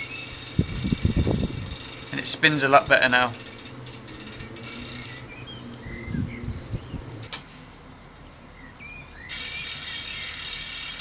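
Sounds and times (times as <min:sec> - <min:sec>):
bicycle hub ticking: 0:00.0 - 0:05.3, 0:09.3 - 0:11.0.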